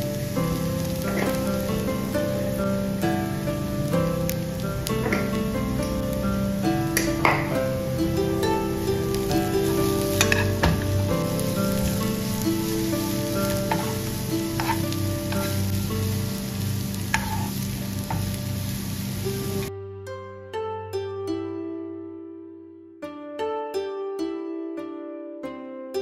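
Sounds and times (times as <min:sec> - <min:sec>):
food sizzling in a pan: 0:00.0 - 0:19.7
soft background music: 0:00.0 - 0:26.0.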